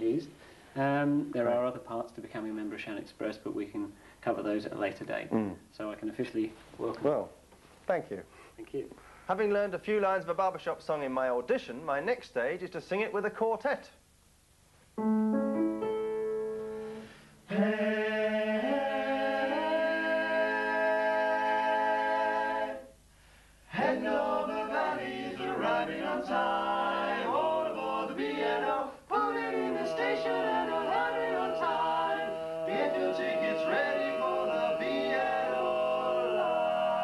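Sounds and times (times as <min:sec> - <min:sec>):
men singing in close harmony: 0:17.5 - 0:22.9, 0:23.7 - 0:37.0.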